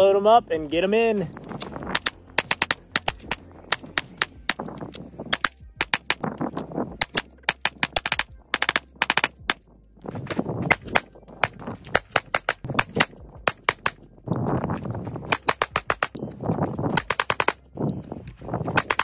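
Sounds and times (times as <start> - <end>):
pistol shots fired rapidly: 7.0 - 9.6, 15.3 - 16.2, 17.0 - 17.6.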